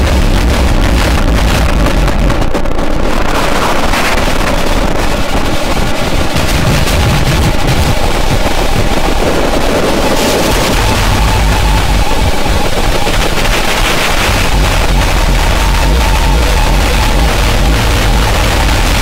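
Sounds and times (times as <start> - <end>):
distorted industrial noise music: 0.0 - 19.0.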